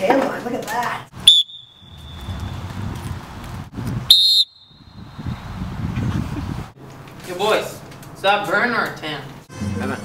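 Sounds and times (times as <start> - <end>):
whistle blast: 1.2 - 2.6, 4.1 - 5.2.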